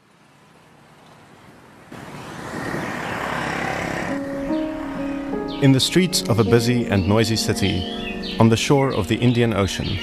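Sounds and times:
motorbike passing: 1.6s - 6.6s.

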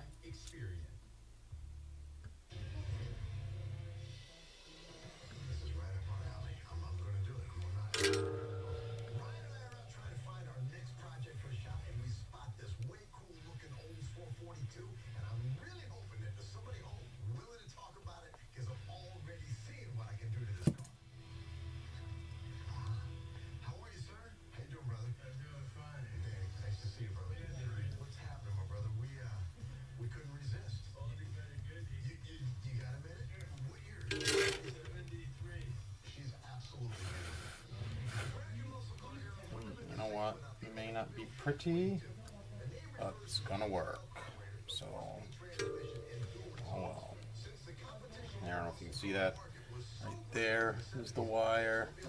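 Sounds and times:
faint talk from radio: 0.0s - 1.1s, 2.5s - 20.9s, 21.6s - 52.0s
metal tool scraping and clinking: 34.1s - 34.8s.

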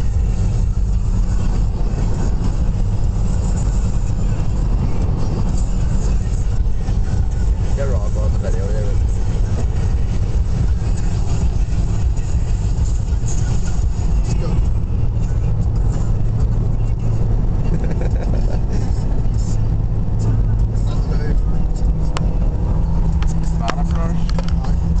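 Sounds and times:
car cabin engine and road rumble: 0.0s - 25.0s.

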